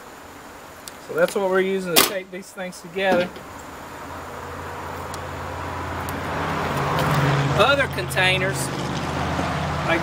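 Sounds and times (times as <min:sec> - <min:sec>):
vehicle engine hum: 0:03.0 - 0:10.0.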